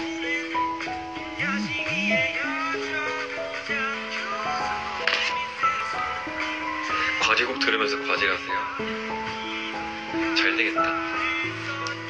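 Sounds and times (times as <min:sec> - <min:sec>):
song with held steady notes: 0:00.0 - 0:12.0.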